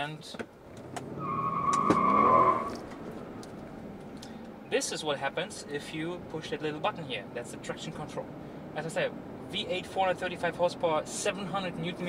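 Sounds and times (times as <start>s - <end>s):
car engine revving: 0.7s - 4.4s
tyres squealing: 1.1s - 2.9s.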